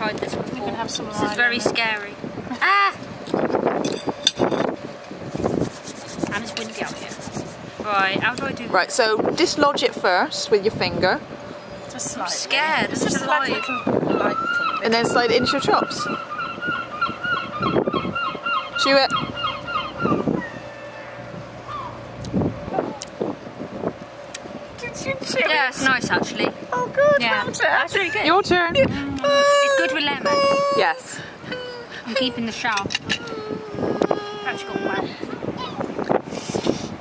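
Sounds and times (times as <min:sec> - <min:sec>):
wind buffeting microphone: 0:00.0 - 0:37.0.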